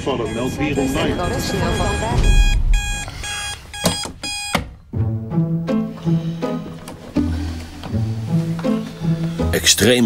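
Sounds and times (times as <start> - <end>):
digital alarm clock beeping: 0.0 - 4.6
deep boom: 1.3 - 3.1.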